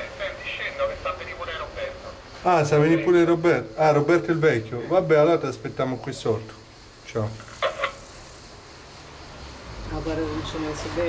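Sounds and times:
voice through intercom speaker: 0.0 - 2.1.

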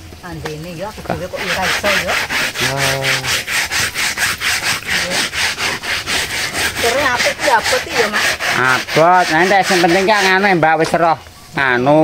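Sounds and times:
rhythmic scraping: 0.0 - 11.3.

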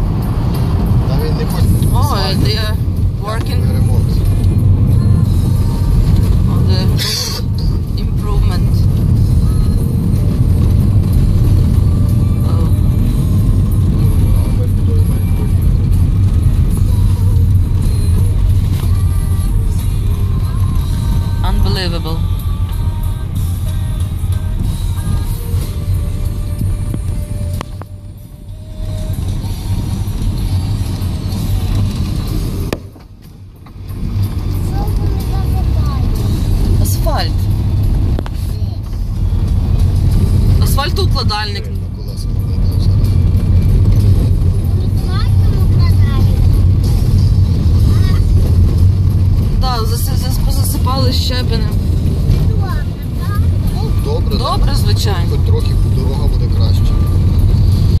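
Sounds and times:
car tyres and engine rumble: 0.0 - 58.0.

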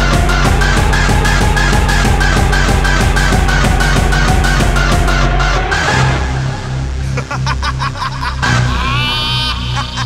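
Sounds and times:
stuttering synth stabs: 0.0 - 8.7
distorted bass line: 0.0 - 8.8
hardcore electronic track: 0.0 - 10.0.

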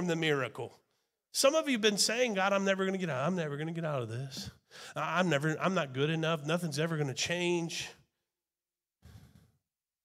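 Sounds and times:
breath into microphone: 4.6 - 5.0, 9.0 - 9.6.

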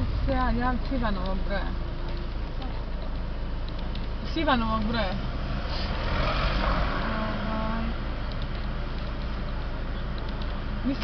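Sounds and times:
low rumble of traffic: 0.0 - 11.0
vehicle driving past: 5.0 - 8.2.

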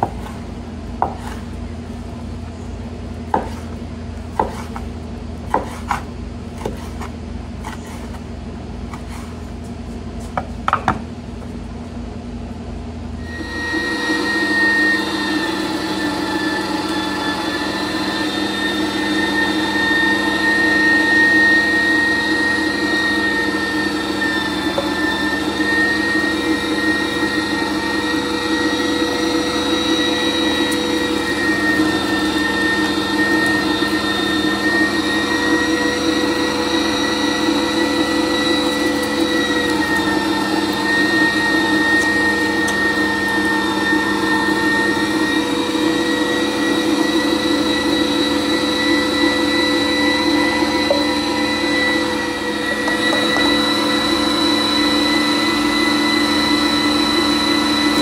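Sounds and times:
electric meat grinder whining: 13.2 - 58.0.

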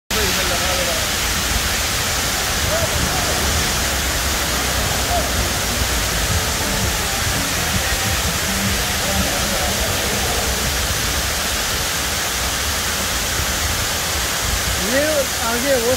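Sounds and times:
faint voices: 0.1 - 13.1
waterfall rushing: 0.1 - 15.9.

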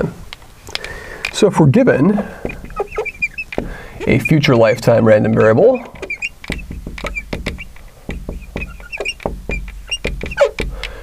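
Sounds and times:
marker tapping and squeaking on glass: 1.3 - 11.0.

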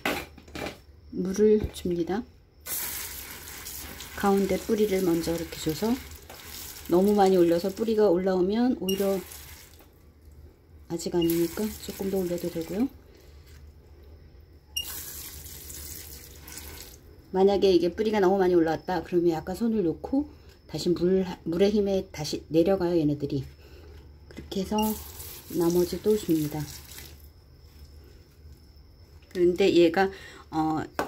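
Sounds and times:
faint thin high whine: 0.0 - 31.0
water streaming into soil: 2.6 - 7.9, 8.9 - 9.9, 11.2 - 12.9, 14.8 - 17.1, 24.8 - 27.3
steady low hum: 9.9 - 14.8.

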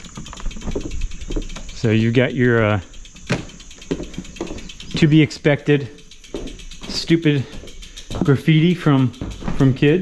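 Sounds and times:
footsteps on wooden deck: 0.0 - 1.7, 3.2 - 5.0, 6.2 - 10.0.

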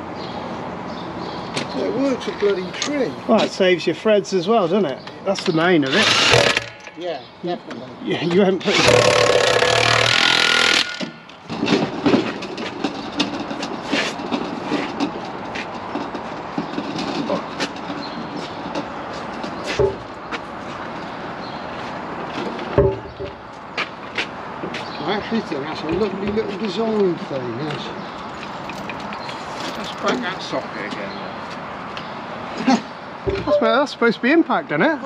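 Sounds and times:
impact wrench hammering: 6.0 - 7.0, 8.7 - 11.4.

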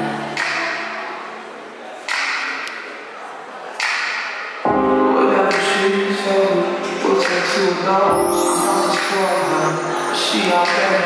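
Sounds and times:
song with singing: 0.0 - 2.4, 3.0 - 11.0.

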